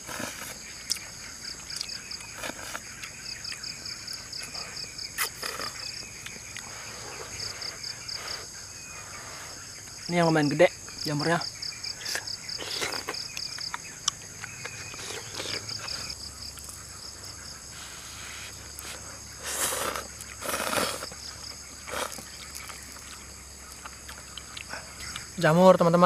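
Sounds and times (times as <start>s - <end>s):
crickets chirping: 0.0s - 26.0s
slurping noodles: 17.8s - 21.2s, 21.8s - 22.3s.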